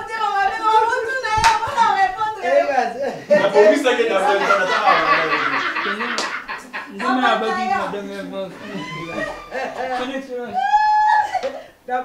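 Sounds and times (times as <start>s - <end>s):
sharp hand clap: 1.4s - 1.8s, 6.1s - 6.5s.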